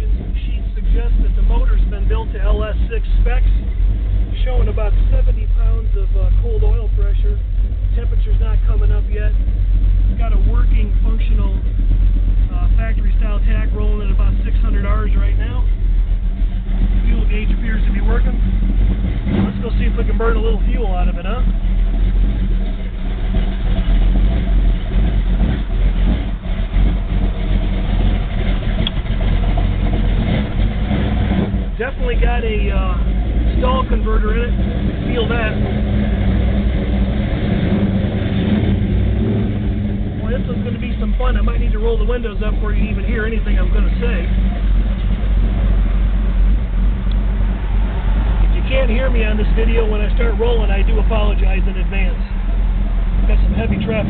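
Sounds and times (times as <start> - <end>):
car engine running inside cabin: 0.0 - 54.0.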